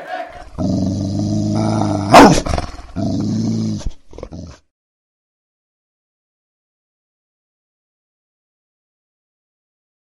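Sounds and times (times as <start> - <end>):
deep dog growl: 0.4 - 4.7.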